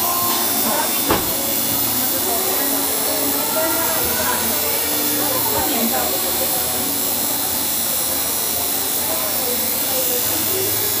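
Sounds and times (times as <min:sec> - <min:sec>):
tattoo machine buzzing: 0:00.0 - 0:11.0.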